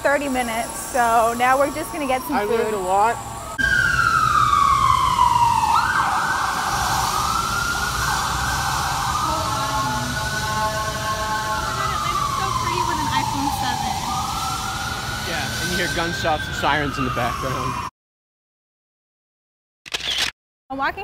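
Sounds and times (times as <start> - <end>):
emergency vehicle siren: 0.0 - 17.9.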